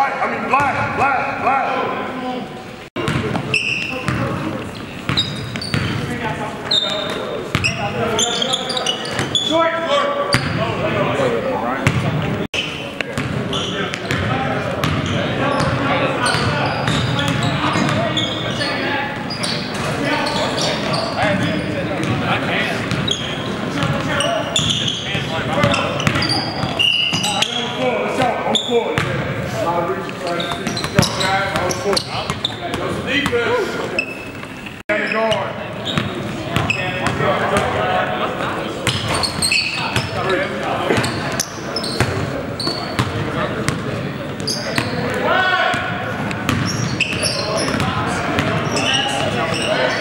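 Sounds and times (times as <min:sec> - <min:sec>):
players calling out: 0:00.0 - 0:50.0
sneakers squeaking: 0:02.4 - 0:50.0.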